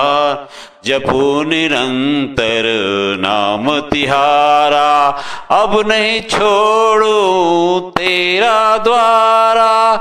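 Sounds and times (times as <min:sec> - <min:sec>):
person chanting devotional song: 0:00.0 - 0:10.0.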